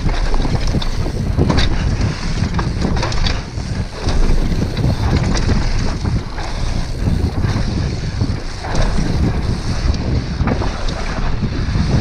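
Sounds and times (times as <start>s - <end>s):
tyres on dirt: 0.0s - 9.9s
bike rattling and knocking: 0.0s - 12.0s
wind on microphone: 0.0s - 12.0s.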